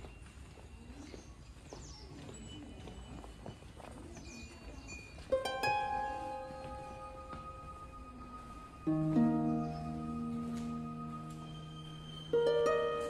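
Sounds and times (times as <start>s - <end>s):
harp-like plucked strings: 5.3s - 13.0s.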